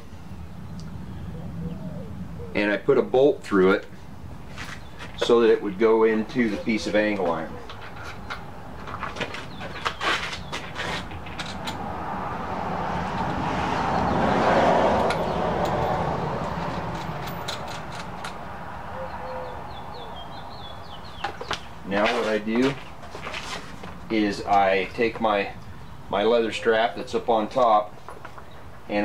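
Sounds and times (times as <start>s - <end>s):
bird chirping: 0.0s - 2.6s, 6.0s - 8.6s, 9.2s - 10.8s, 18.8s - 22.6s.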